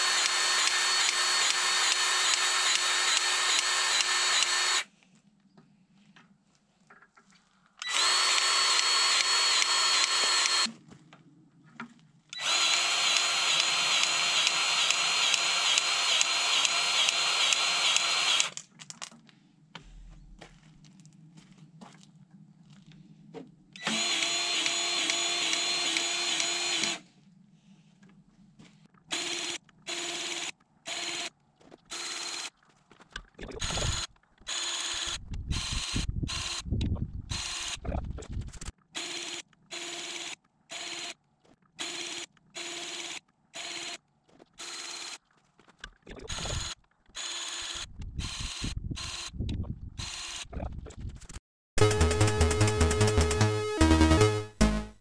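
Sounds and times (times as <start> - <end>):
grease gun motor running: 0.0 - 4.9, 7.8 - 10.7, 12.4 - 18.6, 23.8 - 27.0, 33.6 - 36.6, 46.2 - 49.3.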